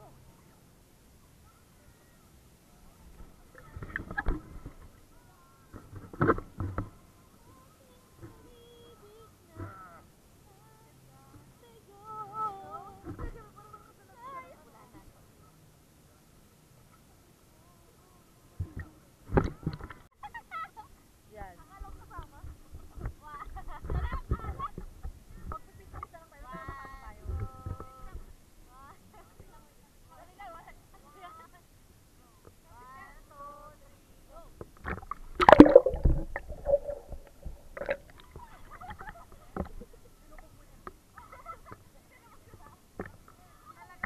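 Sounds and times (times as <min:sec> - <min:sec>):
faint water: 0:00.0 - 0:44.0
water splashing and sloshing: 0:34.7 - 0:38.4
muffled underwater sound: 0:34.9 - 0:38.5.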